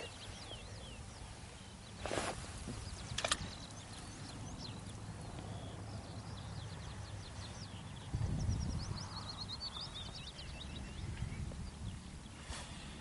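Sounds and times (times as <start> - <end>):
low microphone rumble: 0.0 - 13.0
small birds chirping: 0.0 - 13.0.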